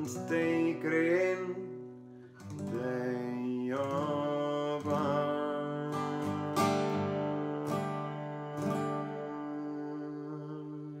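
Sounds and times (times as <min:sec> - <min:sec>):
strummed acoustic guitar: 0:00.0 - 0:11.0
man singing a held note: 0:02.7 - 0:11.0.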